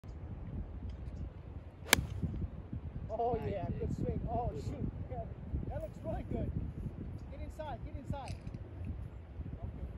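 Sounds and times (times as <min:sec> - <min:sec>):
low wind rumble on microphone: 0:00.0 - 0:09.9
golf club striking ball: 0:01.8 - 0:02.3.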